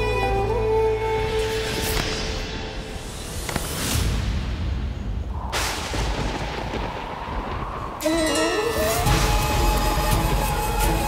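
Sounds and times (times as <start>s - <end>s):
deep rumbling boom: 4.2s - 8.4s.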